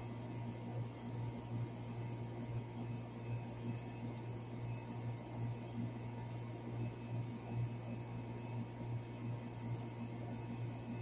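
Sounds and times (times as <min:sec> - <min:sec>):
air conditioner low hum: 0:00.0 - 0:11.0.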